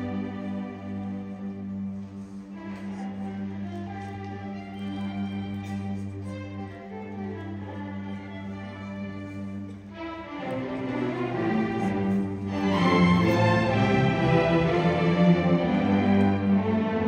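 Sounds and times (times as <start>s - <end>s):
string orchestra playing: 0.0s - 17.0s.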